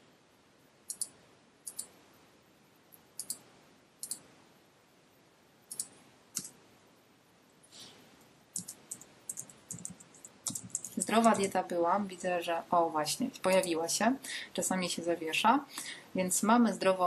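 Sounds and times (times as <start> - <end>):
computer mouse clicks: 0.8 - 2.0, 2.9 - 4.3, 5.7 - 6.6, 8.5 - 11.5.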